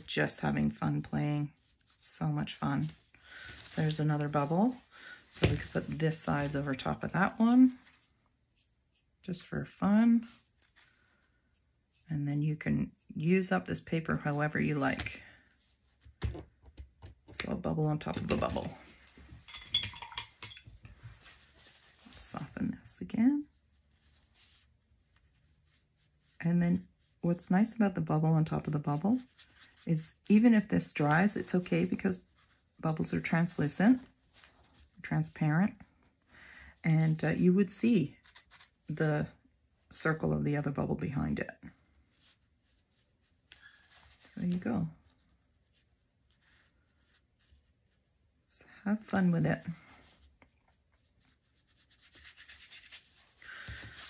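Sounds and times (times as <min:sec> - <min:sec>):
paintbrush brushing on paper: 0:00.0 - 0:14.9, 0:20.9 - 0:35.0, 0:41.8 - 0:48.4, 0:49.2 - 0:54.0.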